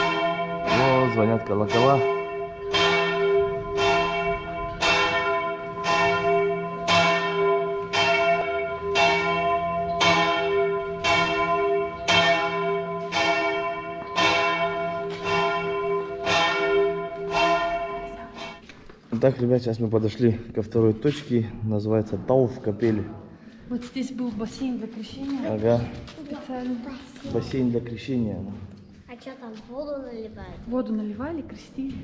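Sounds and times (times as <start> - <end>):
church bell tolling: 0.0 - 19.8.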